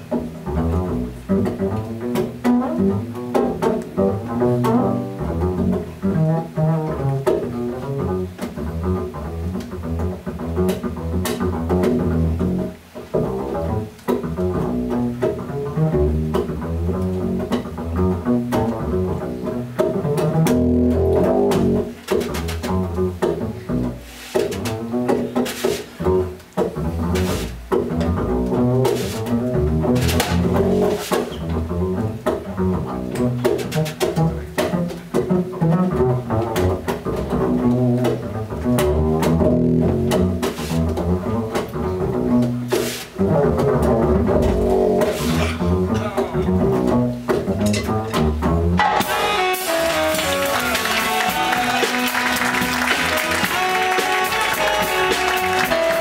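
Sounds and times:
double bass plucked: 0:00.0 - 0:56.0
light drums: 0:07.0 - 0:56.0
cymbals: 0:48.8 - 0:56.0.

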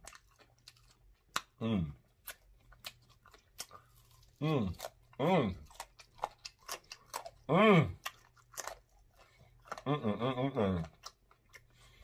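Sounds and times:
wet chewing: 0:00.0 - 0:12.0
person humming: 0:01.6 - 0:02.0, 0:04.4 - 0:05.6, 0:07.5 - 0:08.0, 0:09.8 - 0:10.8.

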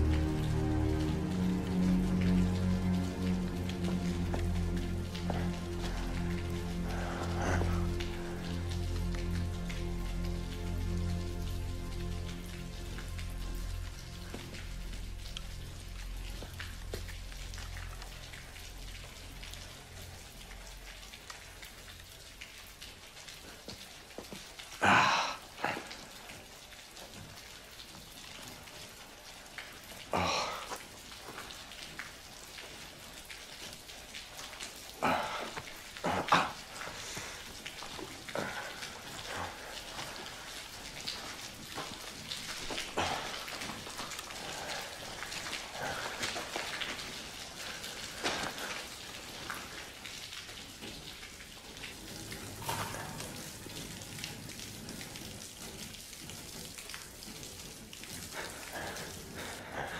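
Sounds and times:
steady rain: 0:00.0 - 0:59.9.

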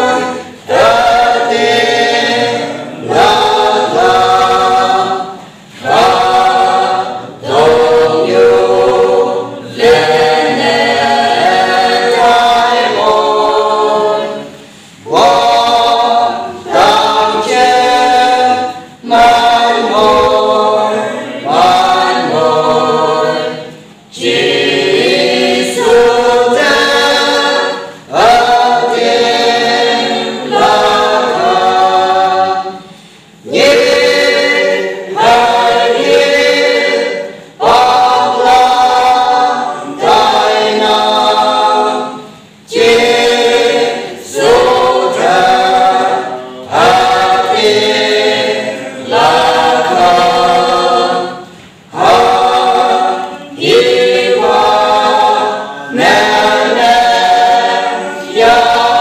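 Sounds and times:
choir singing unaccompanied: 0:00.0 - 0:59.0.

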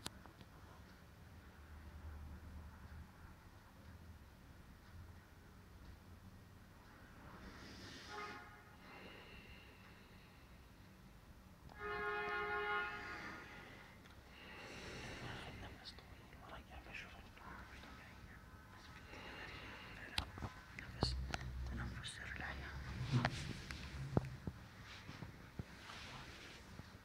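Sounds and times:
man breathing or whispering: 0:13.4 - 0:24.0.

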